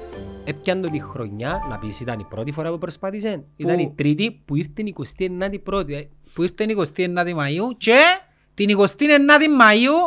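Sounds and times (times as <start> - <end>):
man talking: 0.5 - 10.0
bell-like chime: 1.0 - 2.7.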